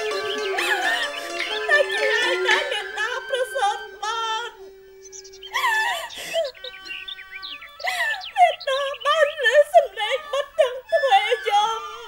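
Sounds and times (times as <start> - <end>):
held instrument notes: 0.0 - 12.0
wavering wailing voice: 0.0 - 12.0.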